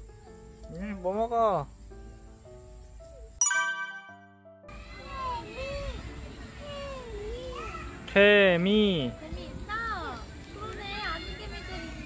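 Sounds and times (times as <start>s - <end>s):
bright music jingle: 3.4s - 4.6s.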